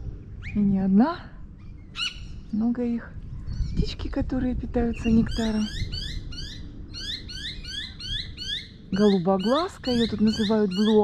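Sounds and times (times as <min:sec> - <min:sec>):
low rumble: 0:00.0 - 0:10.8
bird rapid rising chirps: 0:05.0 - 0:11.0.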